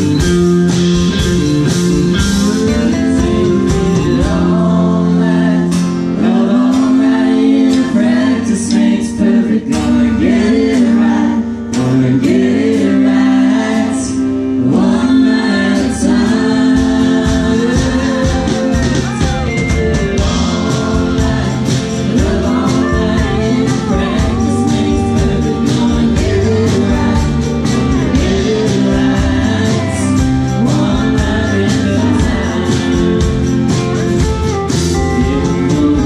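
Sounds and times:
country band playing: 0.0s - 36.0s
sung vocals: 0.0s - 36.0s.

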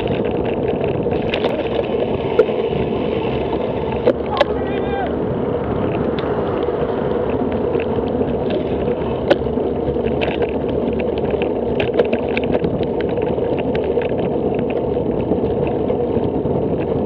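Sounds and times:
road rumble: 0.0s - 17.0s
wind noise on microphone: 0.0s - 17.0s
light clicks and rattles: 5.8s - 16.0s.

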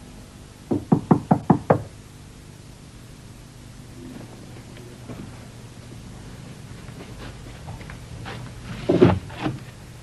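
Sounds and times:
rapid sharp knocks: 0.7s - 1.9s.

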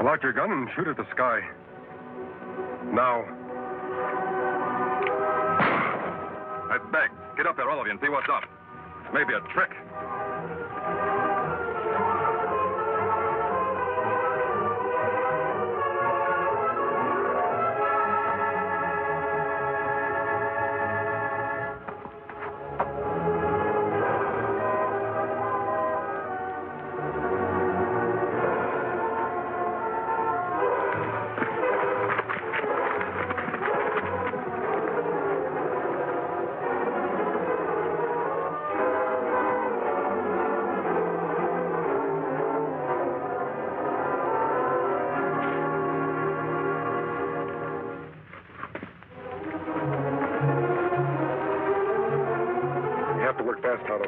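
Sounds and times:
orchestral brass chords: 1.5s - 48.2s, 49.1s - 54.0s.

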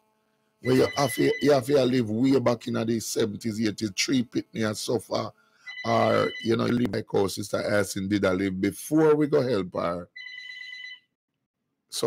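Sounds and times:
electronic beep: 0.6s - 1.6s.

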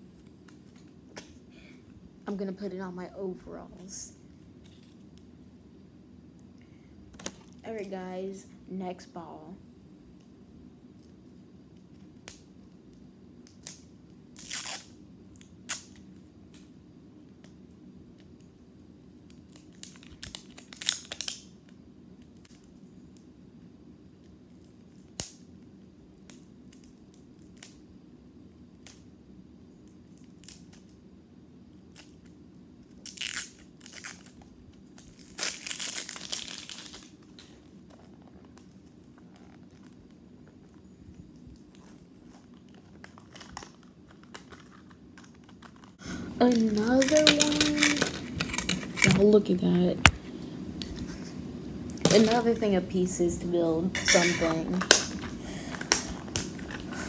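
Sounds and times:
plastic wrapping tearing and crinkling: 13.4s - 16.0s, 19.3s - 22.7s, 31.9s - 40.0s, 41.6s - 49.3s.

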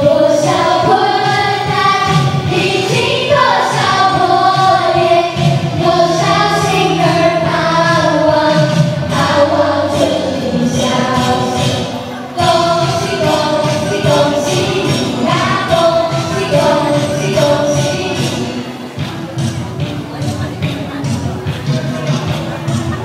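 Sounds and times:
group singing into microphones: 0.0s - 18.9s
backing music: 0.0s - 23.0s.

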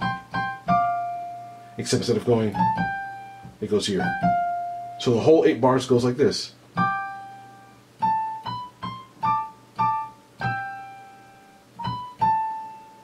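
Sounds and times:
single-note piano melody: 0.0s - 1.6s, 2.5s - 5.0s, 6.8s - 13.0s.

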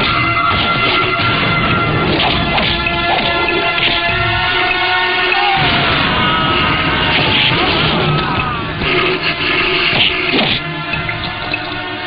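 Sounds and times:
noisy sound effect: 0.0s - 11.7s
dramatic background music: 0.0s - 12.0s.

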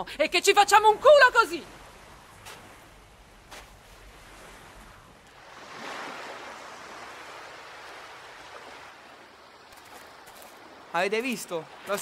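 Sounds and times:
sea waves washing onto beach: 1.2s - 12.0s.

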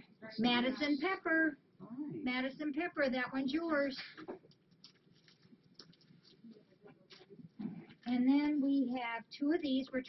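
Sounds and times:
packaging rustling and clicking: 4.2s - 8.1s.

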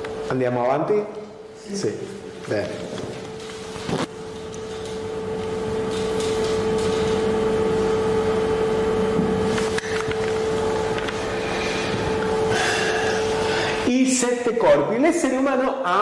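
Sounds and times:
steady hum with held tone: 0.0s - 16.0s.

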